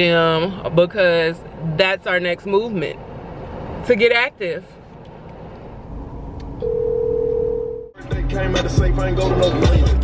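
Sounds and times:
music with heavy bass beat: 0:08.0 - 0:10.0.

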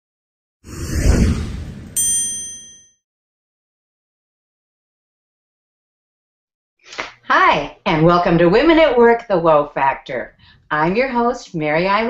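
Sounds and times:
bright bell-like ding: 0:02.0 - 0:03.0.

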